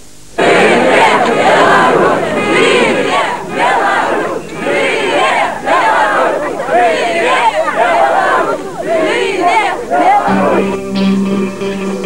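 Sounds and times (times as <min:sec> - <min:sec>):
crowd chanting: 0:00.4 - 0:11.0.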